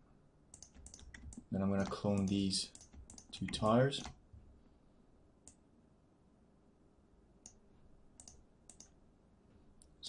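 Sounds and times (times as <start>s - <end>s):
faint computer clicks: 0.5s - 4.2s, 8.2s - 9.0s.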